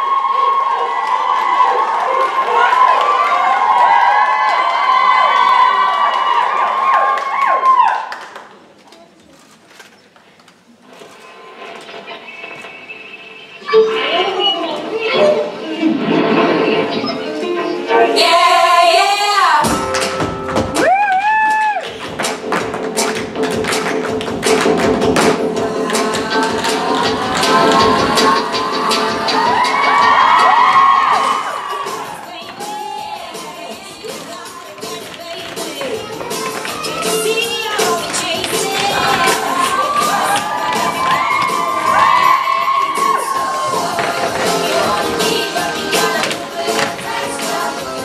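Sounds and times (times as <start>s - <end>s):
audience cheering and screaming: 0.0s - 8.2s, 20.7s - 21.9s, 27.6s - 33.8s, 38.4s - 46.2s
backing music: 15.0s - 21.0s, 21.8s - 48.0s
tap shoes striking stage floor: 19.9s - 25.5s, 34.2s - 43.2s, 43.8s - 47.5s.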